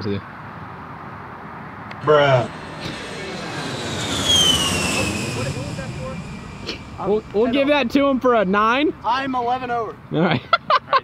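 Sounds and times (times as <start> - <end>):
aircraft rushing noise: 1.9 - 10.1
aircraft high whine: 1.9 - 10.2.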